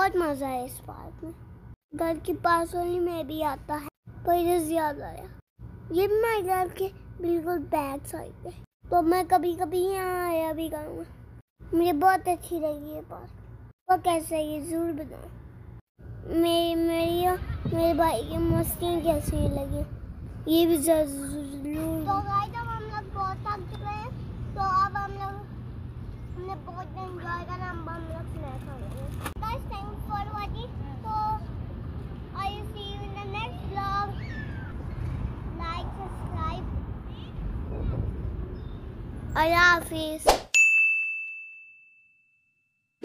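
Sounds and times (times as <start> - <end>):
bell-like ding: 40.6 - 42.9.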